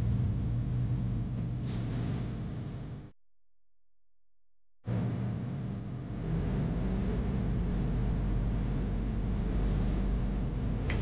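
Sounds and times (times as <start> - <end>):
low rumbling hum: 0.0 - 3.2, 4.9 - 11.0.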